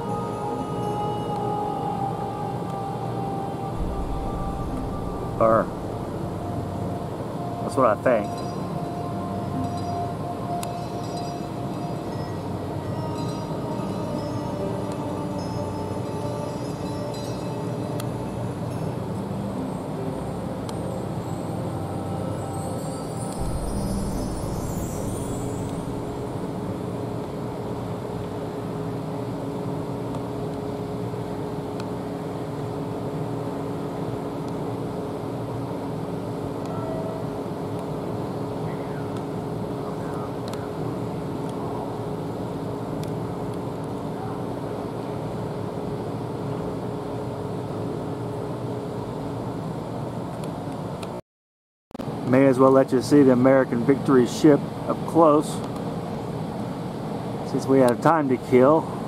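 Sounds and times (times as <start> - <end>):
ship engines droning: 0.0 - 30.0.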